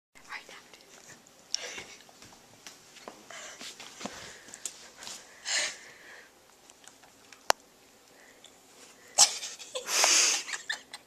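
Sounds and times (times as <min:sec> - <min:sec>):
boy whispering: 0:00.2 - 0:01.1.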